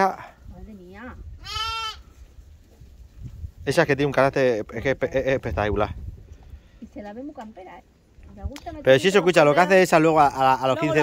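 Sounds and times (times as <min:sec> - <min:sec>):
lamb bleating: 0:01.4 - 0:02.0.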